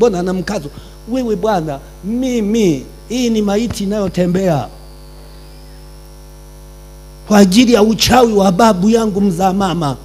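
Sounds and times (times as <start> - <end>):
electrical mains hum: 0.0 - 10.0
faint high whine: 0.0 - 10.0.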